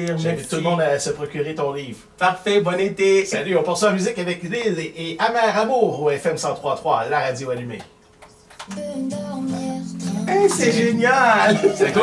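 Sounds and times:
song on radio: 8.7 - 12.0.

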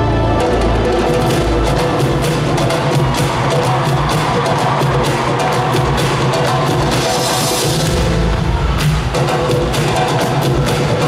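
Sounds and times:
steady bass line: 0.0 - 4.9, 7.7 - 9.8
live pop music in an arena: 0.0 - 11.0.

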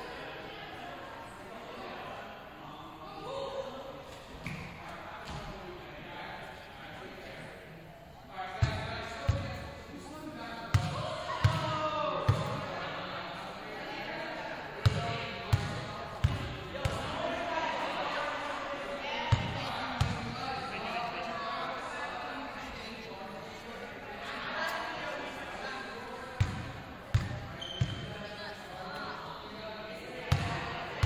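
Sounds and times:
voices chattering in echoing gym: 0.0 - 31.0.

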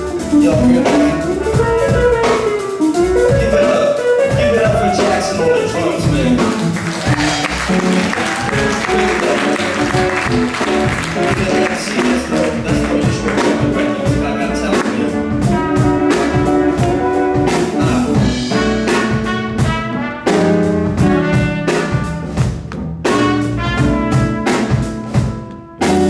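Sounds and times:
drum kit: 0.0 - 26.0
guitar: 0.0 - 26.0
upright bass: 0.0 - 26.0
trumpet line: 3.1 - 26.0.

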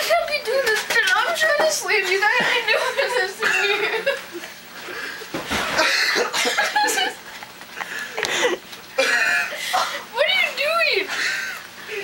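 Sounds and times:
stifled laughter: 2.4 - 10.1.

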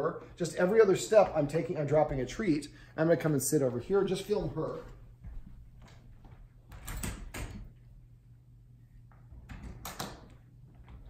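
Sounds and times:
footsteps on hardwood floor: 0.8 - 2.5, 3.6 - 6.6
faint knocks and scuffs: 3.6 - 6.5.

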